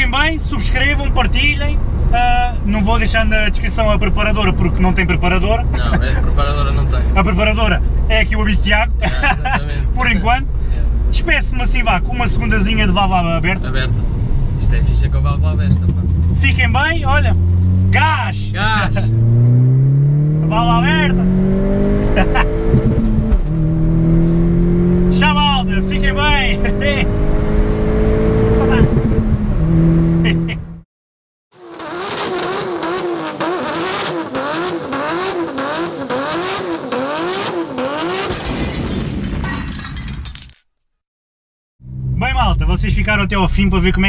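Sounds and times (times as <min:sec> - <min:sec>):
car engine accelerating hard: 0:12.7 - 0:30.7, 0:31.6 - 0:38.3.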